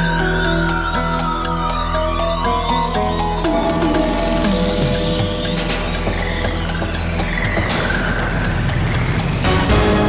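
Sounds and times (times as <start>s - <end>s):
electronic theme music: 0.0s - 10.0s.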